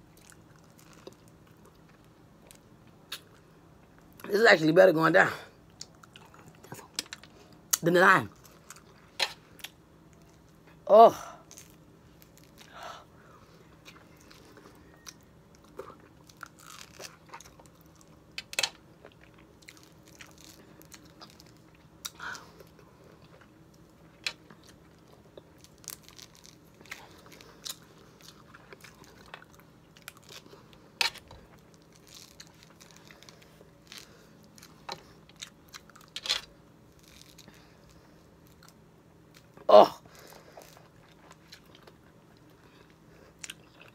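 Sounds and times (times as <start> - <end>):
person chewing: 0.1 - 3.4, 5.7 - 7.4, 13.4 - 36.4, 37.0 - 43.9.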